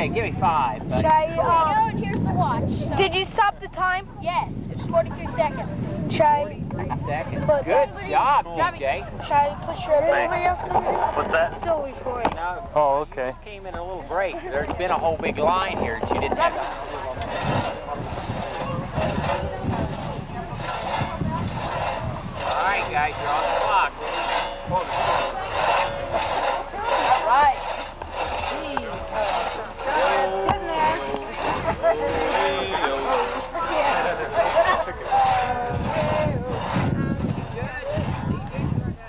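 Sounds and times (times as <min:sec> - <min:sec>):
crosscut saw rasping through log: 0:14.5 - 0:38.8
children calling: 0:16.4 - 0:39.0.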